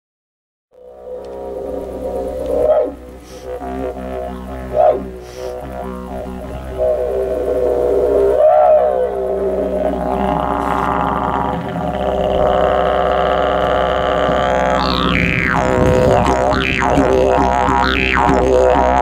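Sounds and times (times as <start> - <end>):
didgeridoo drone: 0.8 - 19.0
voiced calls through didgeridoo: 0.8 - 19.0.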